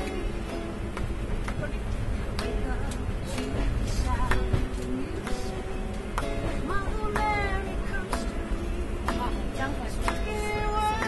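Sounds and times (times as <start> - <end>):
acoustic guitar: 0.0 - 11.0
train carriage rumble: 0.0 - 11.0.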